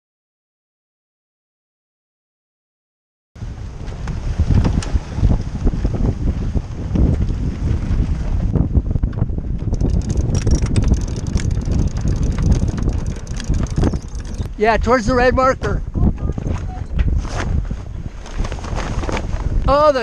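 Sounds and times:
water rushing along hull: 3.4s - 17.0s
wind buffeting microphone: 3.4s - 20.0s
sail flapping with sharp snaps: 3.7s - 14.6s, 16.4s - 19.7s.

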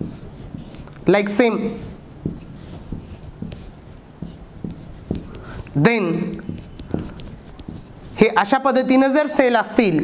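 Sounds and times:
marker scratching on whiteboard: 0.0s - 8.6s.

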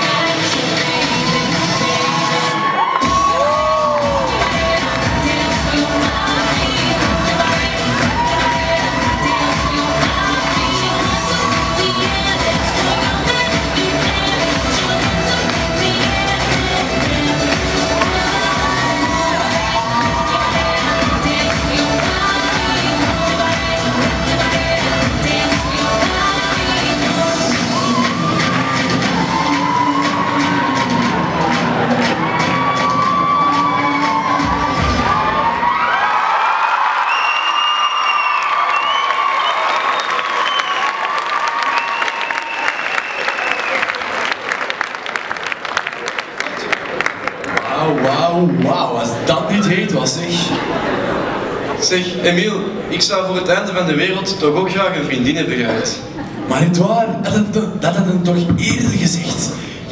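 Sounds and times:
loud pop dance music: 0.0s - 36.3s, 47.6s - 50.9s, 51.8s - 59.9s
audience shrieking and cheering: 0.8s - 15.0s, 17.5s - 24.5s, 25.3s - 45.1s.

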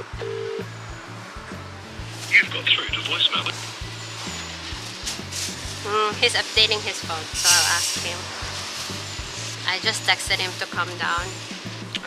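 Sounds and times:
telephone ringback tone: 0.0s - 0.7s
background music with steady beat: 0.0s - 12.0s.

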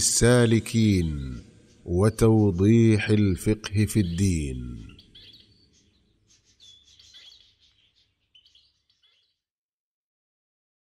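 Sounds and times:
birds chirping: 0.0s - 9.4s.

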